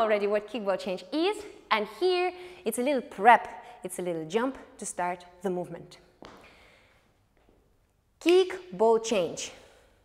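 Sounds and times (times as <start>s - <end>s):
dance shoe tap on floor: 6.2s - 6.5s.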